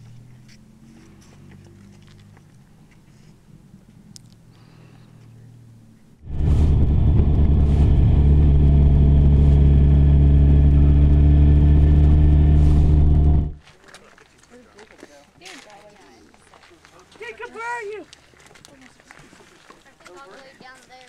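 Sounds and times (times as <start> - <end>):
motorcycle engine cruising: 5.3 - 13.6.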